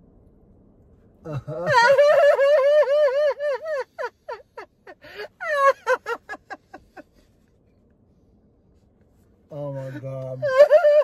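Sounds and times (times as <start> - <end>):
man laughing hysterically: 1.2 - 7.3, 9.9 - 11.0.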